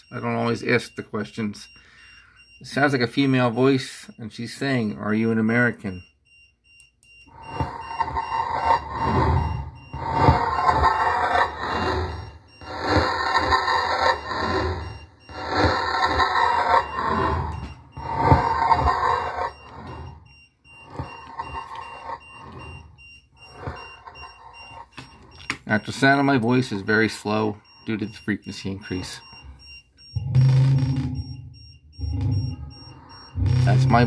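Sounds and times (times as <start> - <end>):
looped rough ringing voice snippet: 25.7 - 29.5, 30.1 - 34.0.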